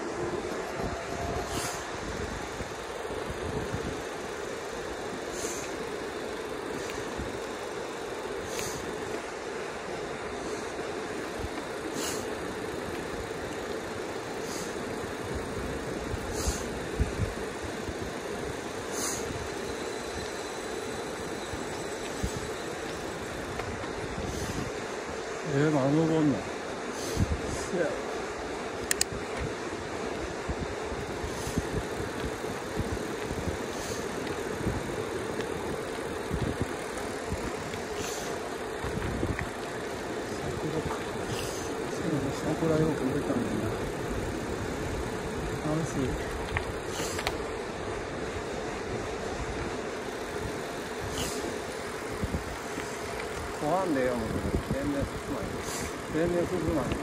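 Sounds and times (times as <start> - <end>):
tyre and wind hum: 0.0 - 57.0
light clicks: 28.8 - 29.5.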